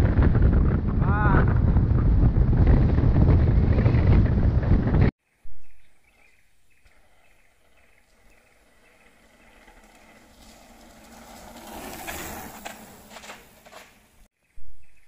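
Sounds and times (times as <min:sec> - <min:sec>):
bike ticking: 0:06.9 - 0:14.3
bike tyres rolling over bricks: 0:07.6 - 0:14.3.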